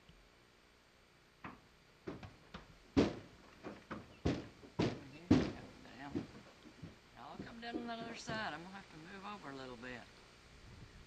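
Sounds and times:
horse hooves on trailer floor: 0:01.4 - 0:08.8.

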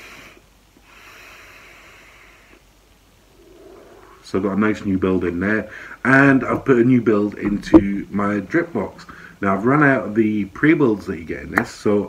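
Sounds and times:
long exhale: 0:00.0 - 0:02.6, 0:05.7 - 0:06.0, 0:09.1 - 0:09.4
vape drag hiss: 0:00.0 - 0:04.2.

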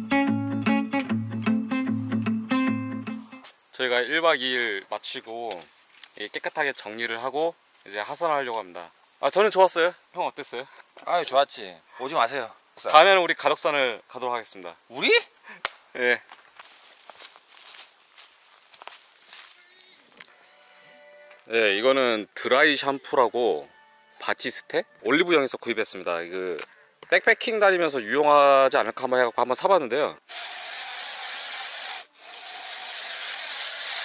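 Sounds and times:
boots crunching on leaves: 0:16.3 - 0:20.0
aerosol spray hissing: 0:30.3 - 0:34.0.

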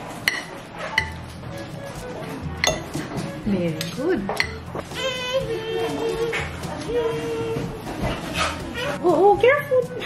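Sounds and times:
metal fork clinking on dinnerware: 0:00.2 - 0:01.2, 0:02.6 - 0:03.0, 0:03.8 - 0:04.7.

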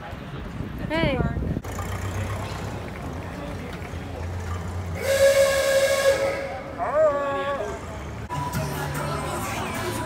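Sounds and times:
vintage car horn ah-ooga: 0:05.0 - 0:06.8.

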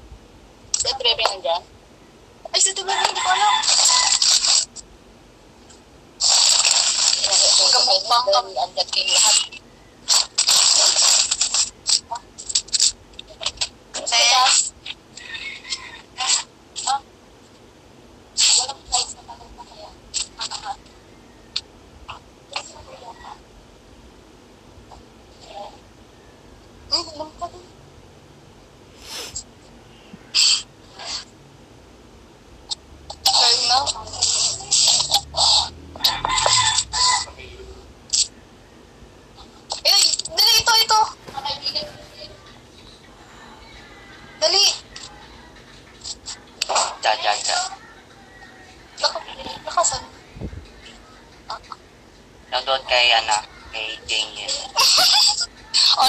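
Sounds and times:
scraping on phone microphone: 0:29.0 - 0:29.5.

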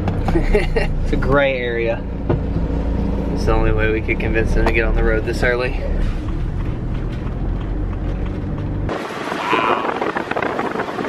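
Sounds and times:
engine and road noise rumble: 0:00.0 - 0:11.0.

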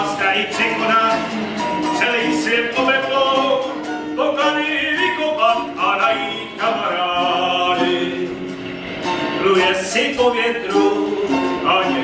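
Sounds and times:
person singing: 0:00.0 - 0:08.5, 0:09.3 - 0:12.0
ukulele and acoustic guitar: 0:00.0 - 0:12.0.

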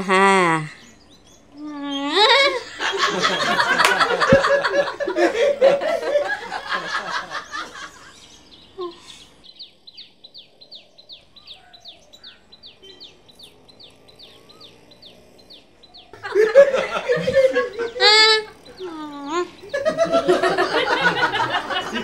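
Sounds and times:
small bird chirping: 0:00.0 - 0:05.1, 0:07.2 - 0:21.6
people laughing: 0:02.1 - 0:09.0, 0:16.1 - 0:22.0.

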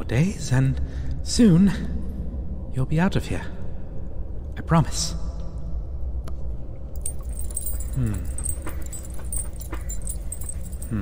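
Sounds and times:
low ambient rumble: 0:00.0 - 0:11.0
light metallic jingling: 0:06.9 - 0:11.0.

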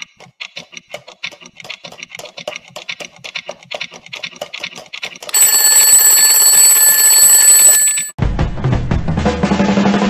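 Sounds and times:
alarm clock ticking rapidly: 0:05.2 - 0:08.2
alarm clock bell ringing: 0:05.3 - 0:08.2.

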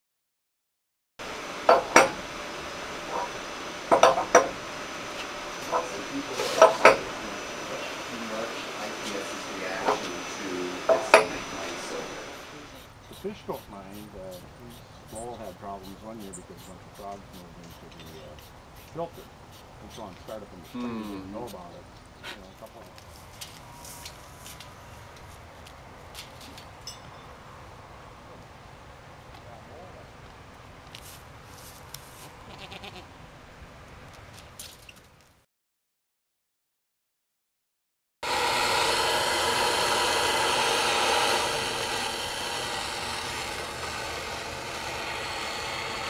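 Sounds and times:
outdoor background noise: 0:01.2 - 0:35.4, 0:38.2 - 0:46.0
farm animal bleat: 0:32.2 - 0:33.1.

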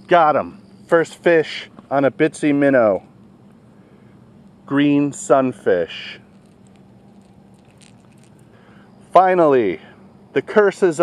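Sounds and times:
low steady hum: 0:00.0 - 0:11.0
hands handling fish and hooks: 0:06.2 - 0:08.5.

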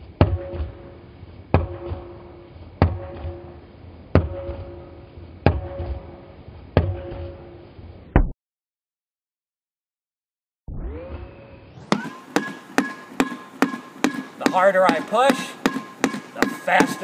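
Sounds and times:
rubber ball bouncing on court: 0:11.9 - 0:17.0.

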